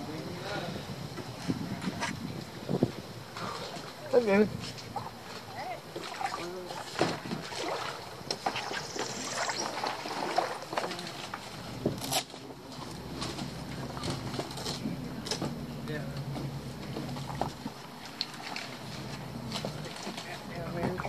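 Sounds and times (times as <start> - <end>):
steady background hiss: 0.0 - 21.0.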